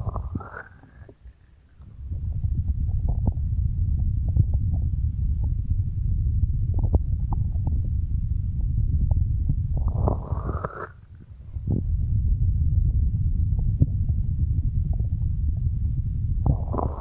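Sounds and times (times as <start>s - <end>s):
muffled low rumble: 0.0s - 1.2s, 1.8s - 17.0s.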